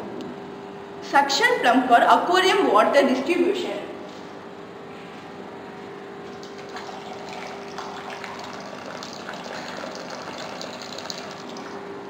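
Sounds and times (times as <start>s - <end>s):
water splashing into tank: 6.3s - 11.9s.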